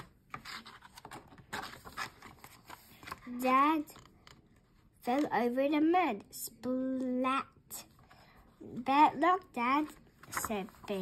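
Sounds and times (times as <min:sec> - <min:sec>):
paper page rustling: 0:00.3 - 0:03.2.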